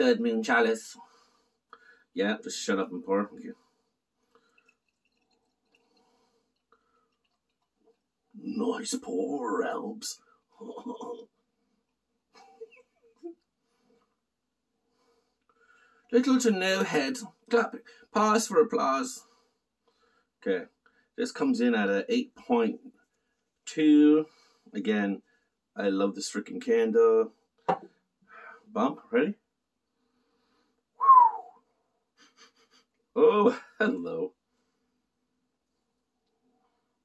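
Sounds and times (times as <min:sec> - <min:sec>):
beer glugging into a glass: 0:04.4 - 0:08.1.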